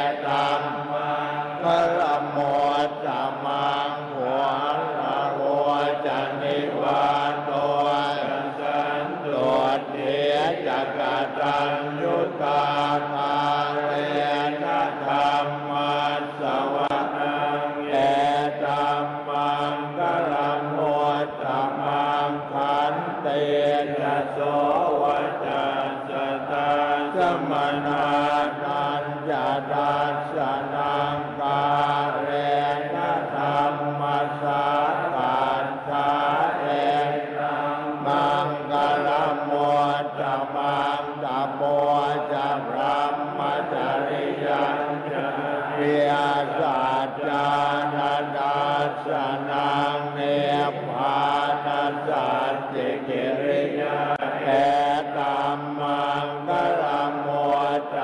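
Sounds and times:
monks chanting in unison: 0:00.0 - 0:58.0.

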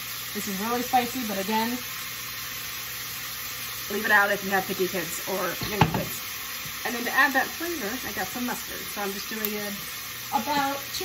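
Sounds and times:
bacon sizzling in a frying pan: 0:00.0 - 0:11.0.

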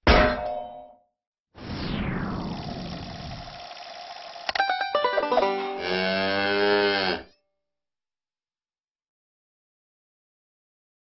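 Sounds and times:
plucked banjo-like notes: 0:04.5 - 0:06.0
cow mooing: 0:05.6 - 0:07.4.

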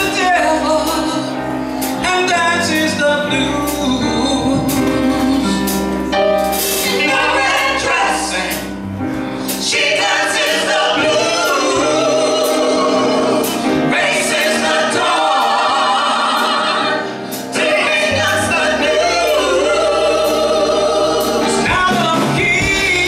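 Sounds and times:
funk band playing: 0:00.0 - 0:23.0
man singing lead: 0:02.0 - 0:05.6, 0:21.4 - 0:23.0
backing singers: 0:06.7 - 0:23.0.

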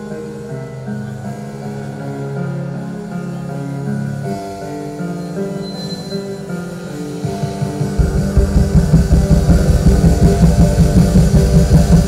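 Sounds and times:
drums: 0:06.9 - 0:12.0.

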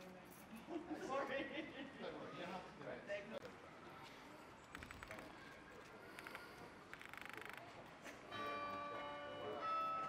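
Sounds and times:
bells ringing: 0:08.3 - 0:10.0.

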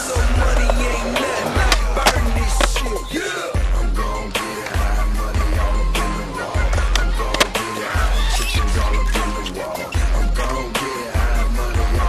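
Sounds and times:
hip hop music with heavy bass: 0:00.0 - 0:12.0
skateboard wheels rolling on concrete: 0:00.0 - 0:12.0
skateboard clacks: 0:00.1 - 0:03.0, 0:06.6 - 0:08.0.

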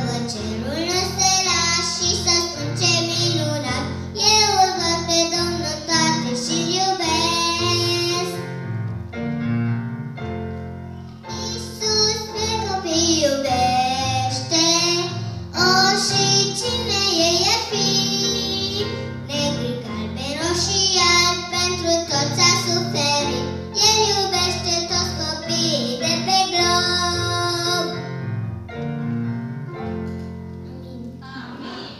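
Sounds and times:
girl singing into microphone: 0:00.0 - 0:08.4, 0:11.4 - 0:28.0.

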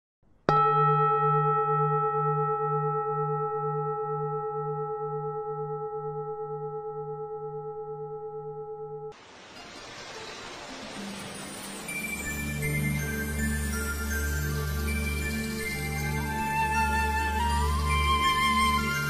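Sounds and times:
struck bell ringing: 0:00.5 - 0:09.1.

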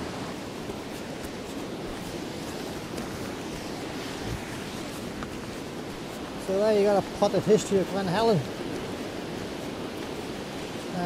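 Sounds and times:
river rushing over rocks: 0:00.0 - 0:11.0.

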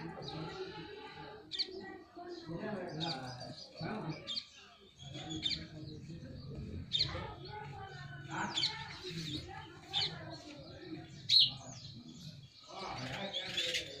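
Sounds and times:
birds chirping: 0:00.0 - 0:14.0
low background murmur: 0:00.0 - 0:14.0.

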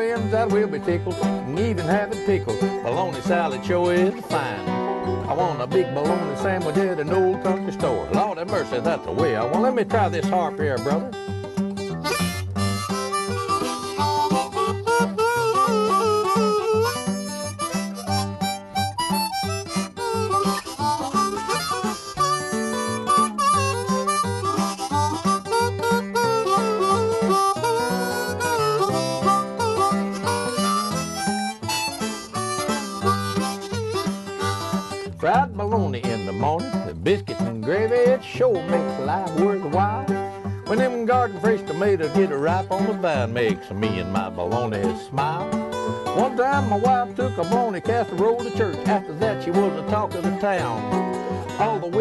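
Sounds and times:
acoustic guitar accompaniment: 0:00.0 - 0:52.0
harmonica with bending notes: 0:00.0 - 0:52.0.

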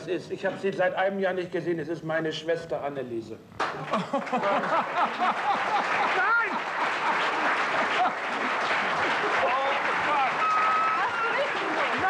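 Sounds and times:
audience applauding: 0:03.6 - 0:12.0.

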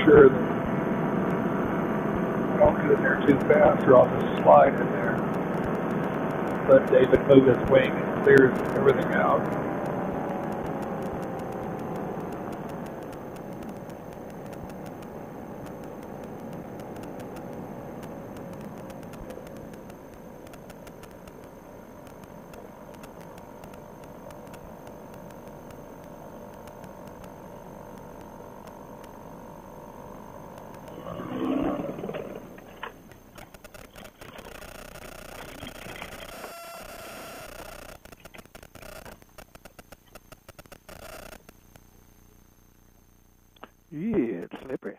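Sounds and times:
paramotor engine: 0:00.0 - 0:39.3.

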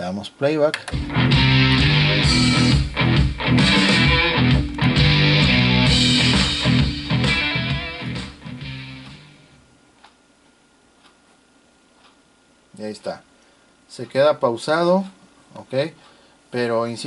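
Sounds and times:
guitar music: 0:00.9 - 0:09.6.

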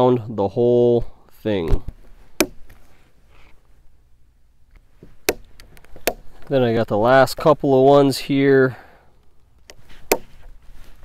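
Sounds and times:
hole punch snapping through leather: 0:02.4 - 0:02.8, 0:05.2 - 0:06.5, 0:09.6 - 0:10.4.

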